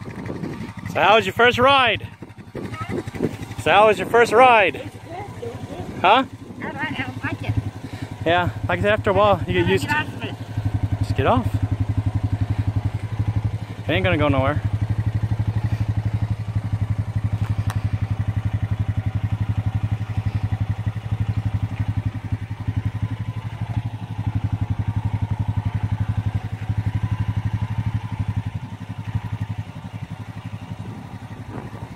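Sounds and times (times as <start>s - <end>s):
atv engine idling: 0.0s - 31.9s.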